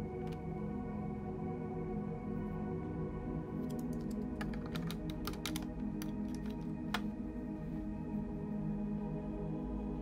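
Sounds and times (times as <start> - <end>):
soft ambient music: 0.0 - 10.0
plastic bricks clicking: 4.4 - 6.6.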